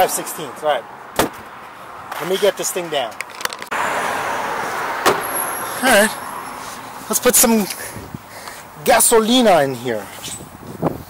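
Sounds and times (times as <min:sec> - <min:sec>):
road vehicle passing: 0:00.0 - 0:09.0.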